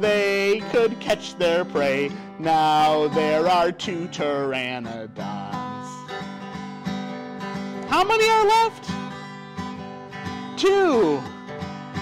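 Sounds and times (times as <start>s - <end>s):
man singing: 0.0s - 6.1s, 10.6s - 11.3s
acoustic guitar strumming: 0.0s - 12.0s.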